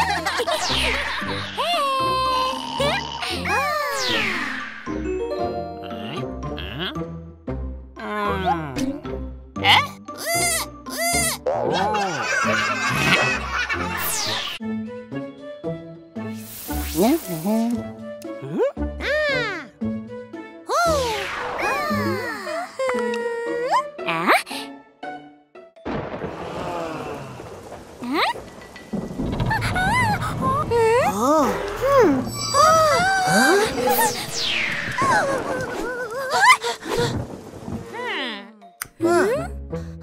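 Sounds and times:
background music: 0.0 - 29.2, 36.6 - 40.0
cartoon character vocal sounds: 1.6 - 4.1
heavy rain hiss: 16.4 - 17.8, 26.0 - 30.5, 36.4 - 38.0
low rumble of thunder: 25.9 - 32.3, 37.0 - 38.0.

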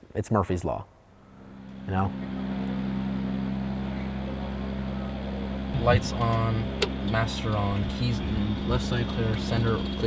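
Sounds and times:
engine droning: 1.1 - 10.0.

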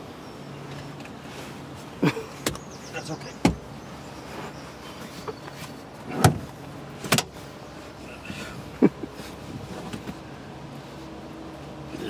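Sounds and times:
thumps and knocks against car seats: 0.7 - 7.5, 8.3 - 10.3.

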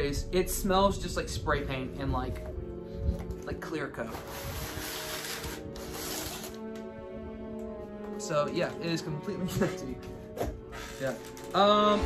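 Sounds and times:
background music with held tones: 0.0 - 12.0
cardboard scrape: 4.0 - 6.6.

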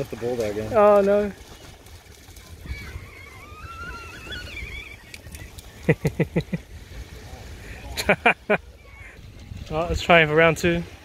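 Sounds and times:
man laughing: 5.8 - 6.6, 8.0 - 8.6.

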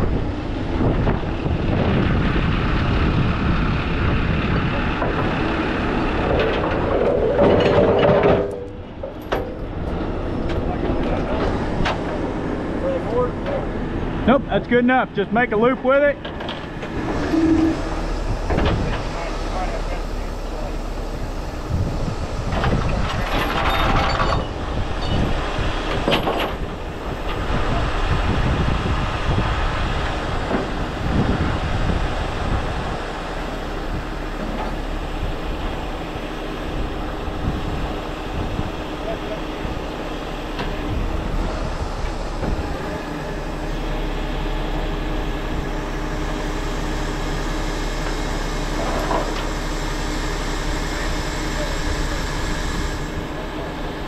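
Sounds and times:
heavy diesel engine running: 0.0 - 54.0
hydraulics lifting: 0.0 - 54.0
loud rushes of noise: 0.0 - 54.0.

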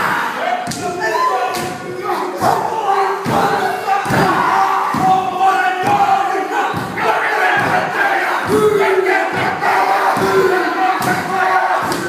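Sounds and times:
men chanting and shouting: 0.0 - 12.0
stamping feet and chest slaps: 2.4 - 12.0.

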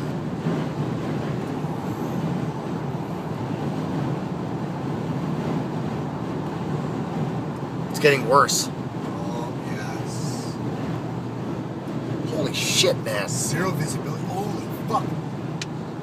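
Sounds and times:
car cabin engine and road noise: 0.0 - 16.0.

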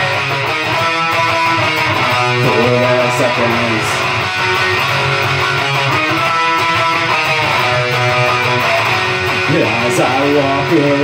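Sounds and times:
electric guitar strummed loud: 0.0 - 11.0
person singing: 1.9 - 4.5, 9.4 - 11.0.

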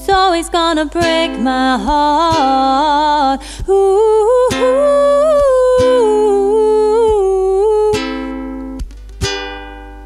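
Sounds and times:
strummed ukulele: 0.0 - 10.0
woman humming: 3.6 - 8.1.

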